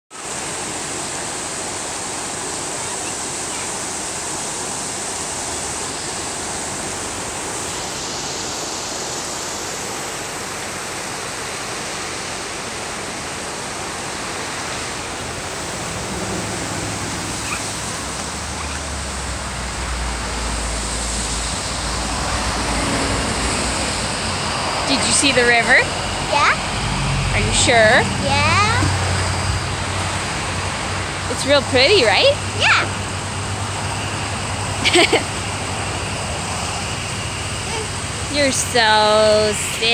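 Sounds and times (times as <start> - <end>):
river whitewater roaring: 0.1 - 39.9
low rumble: 15.7 - 31.3.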